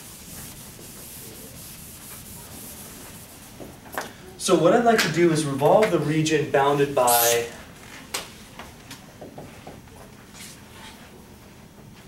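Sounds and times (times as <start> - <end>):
rubbing strokes on a whiteboard: 0.0 - 3.8.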